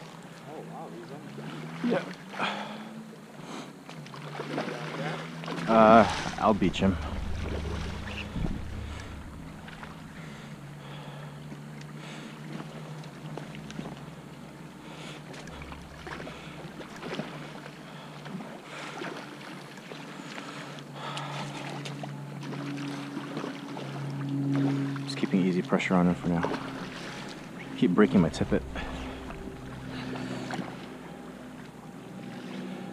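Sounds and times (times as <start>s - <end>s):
creek water running: 0.0s - 32.9s
wind on microphone: 5.9s - 10.6s.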